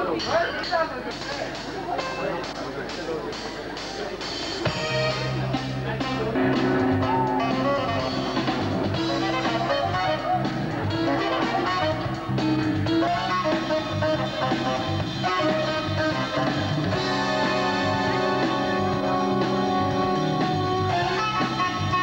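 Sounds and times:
live jazz band playing: 1.5s - 22.0s
electric guitar: 4.7s - 22.0s.

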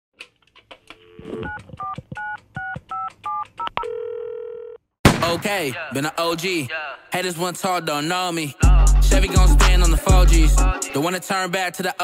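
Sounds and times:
two-tone keypad beeps: 1.3s - 3.9s.

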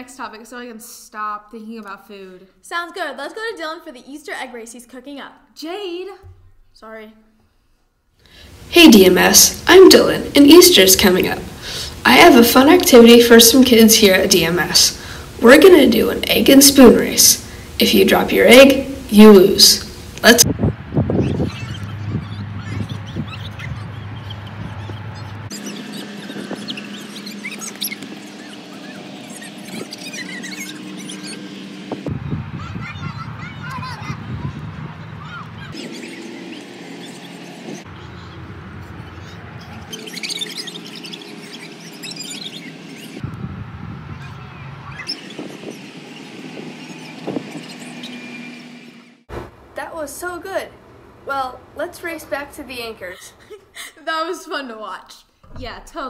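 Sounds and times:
distant voices and shouts: 21.2s - 35.8s.

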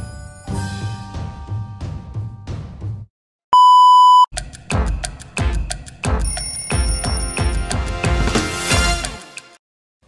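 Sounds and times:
commercial music with drumbeats: 1.1s - 3.1s, 4.3s - 9.6s
high test-tone beep: 3.6s - 4.3s.

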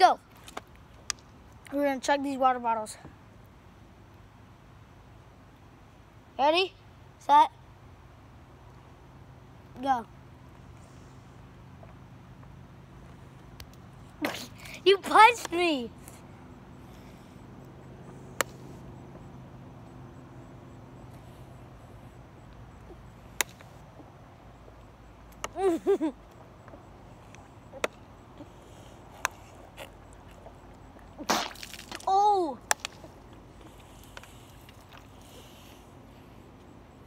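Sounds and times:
faint low hum: 0.0s - 37.0s.

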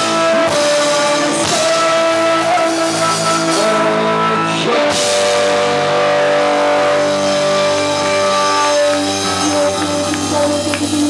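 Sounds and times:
rock band sustained chord: 0.0s - 11.0s.

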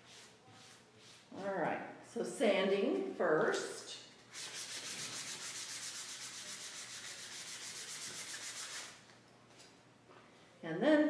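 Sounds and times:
sandpaper rubbing on paper: 0.0s - 1.4s, 4.3s - 9.0s.

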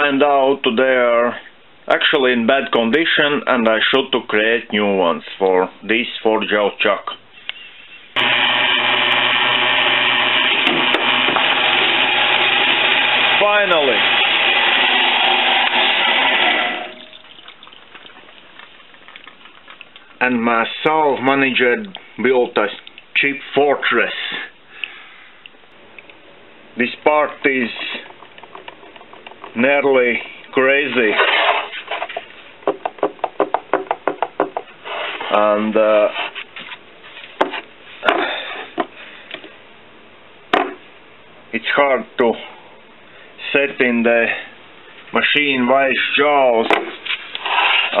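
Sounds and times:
bandsaw motor hum: 8.2s - 17.1s.

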